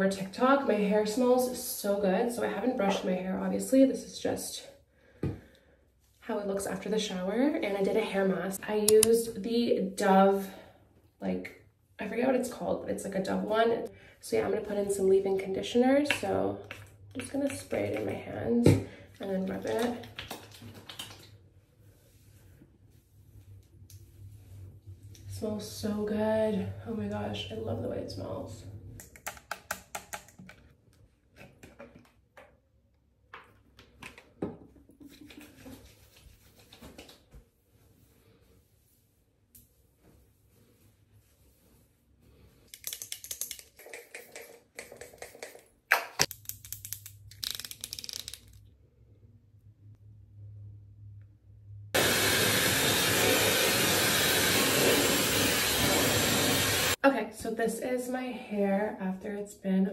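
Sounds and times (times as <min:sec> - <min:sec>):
wet hands squishing: 0:19.6 - 0:21.6
hands rubbing and handling things: 0:35.0 - 0:48.6.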